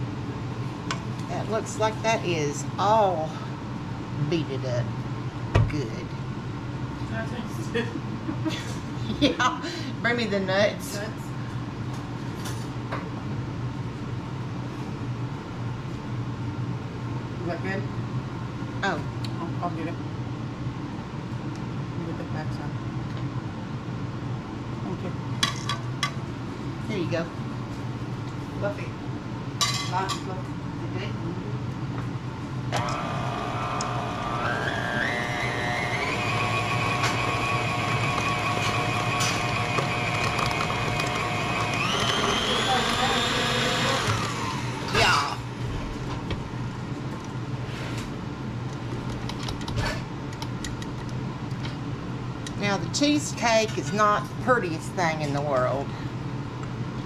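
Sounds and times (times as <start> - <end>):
steady low hum: 0.0 - 57.0
stand mixer motor whine: 32.8 - 45.0.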